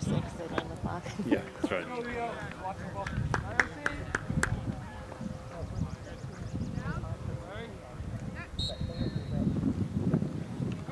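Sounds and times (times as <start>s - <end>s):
faint distant voices: 0.0s - 10.9s
wind rumbling on microphone: 0.0s - 10.9s.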